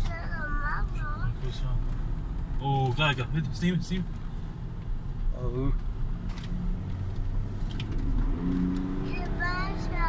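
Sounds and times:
car engine: 0:00.0 - 0:10.0
road rumble: 0:00.0 - 0:10.0.

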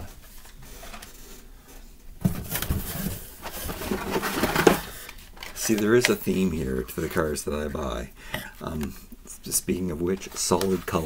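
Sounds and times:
blister packs rustling and clacking: 0:02.4 - 0:06.2.

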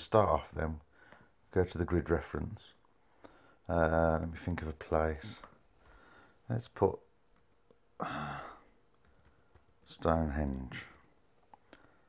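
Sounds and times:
man sighing: 0:08.0 - 0:08.8.

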